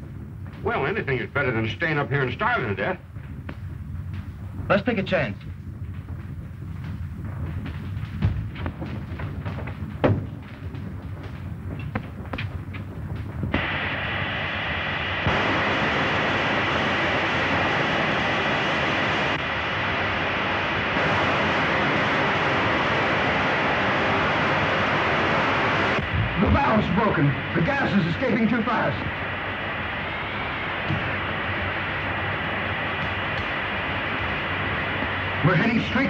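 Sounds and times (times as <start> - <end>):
low hum: 0.0 - 36.0
knocks: 8.1 - 10.9.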